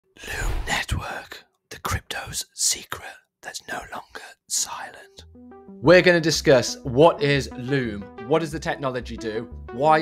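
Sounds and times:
person whispering: 0.2 - 5.3.

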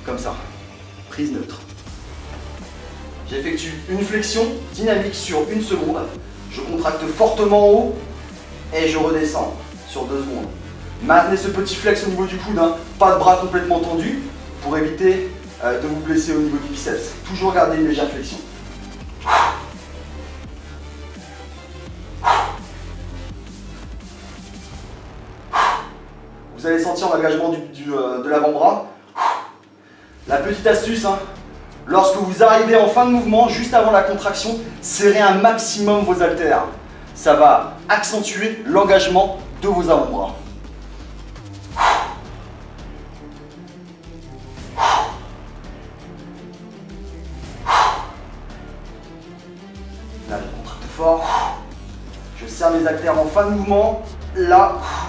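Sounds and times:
background music: 0.0 - 55.0
man exhaling forcefully: 19.2 - 19.9, 22.2 - 22.8, 25.5 - 26.1, 29.0 - 30.2, 41.7 - 42.3, 44.6 - 45.4, 47.6 - 48.2, 51.2 - 51.8.

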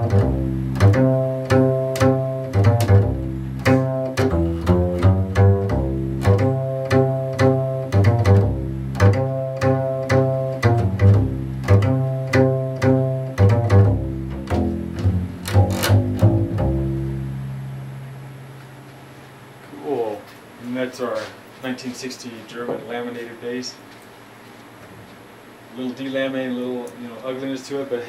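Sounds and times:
double bass plucked jazz line: 0.0 - 19.1.

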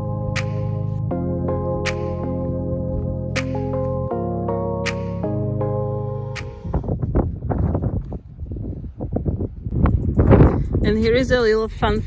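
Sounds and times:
wind buffeting microphone: 6.4 - 12.0.

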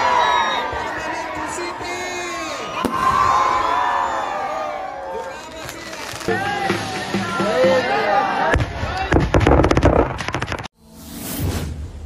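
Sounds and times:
firecrackers banging and crackling: 5.1 - 7.5, 8.6 - 10.7.

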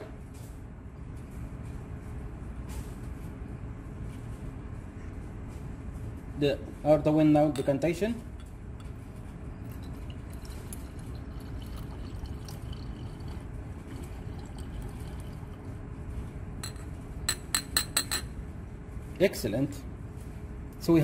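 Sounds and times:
liquid pouring into glass flask: 9.6 - 15.8.

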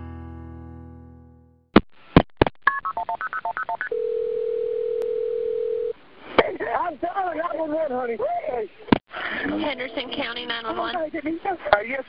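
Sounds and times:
telephone ringing tone: 2.7 - 5.9
person speaking on telephone: 9.4 - 12.0.

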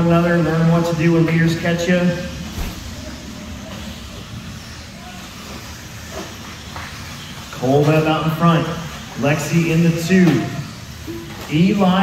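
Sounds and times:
rc buggy motors and tyres: 0.0 - 12.0.

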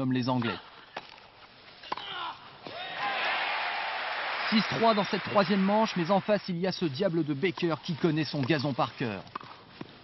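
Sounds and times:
racquets hitting tennis ball: 7.4 - 10.0.

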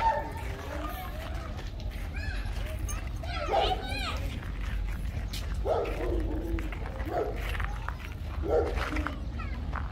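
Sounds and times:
dog barking: 3.5 - 3.8, 5.6 - 7.5, 8.4 - 9.0.

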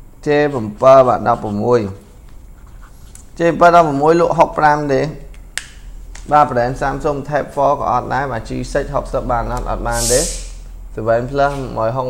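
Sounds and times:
man speaking: 0.2 - 2.0, 3.4 - 5.3, 6.3 - 10.4, 11.0 - 12.0.

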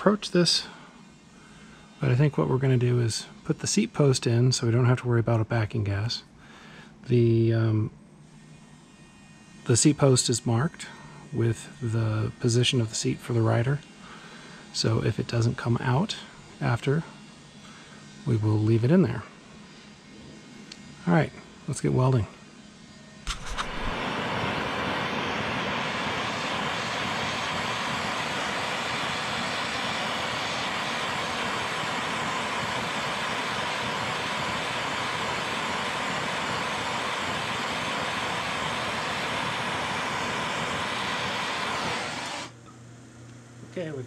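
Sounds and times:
gas torch hissing: 23.3 - 42.6
torch clicks: 23.3 - 42.6.

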